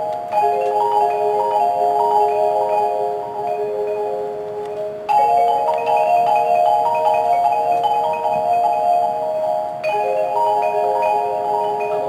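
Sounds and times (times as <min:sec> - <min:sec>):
marimbas and vibraphones playing chords: 0:00.0 - 0:12.0.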